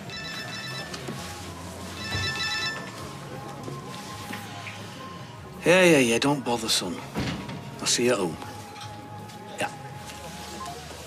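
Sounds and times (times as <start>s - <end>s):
telephone ringing: 0.0s - 1.3s, 1.9s - 3.2s.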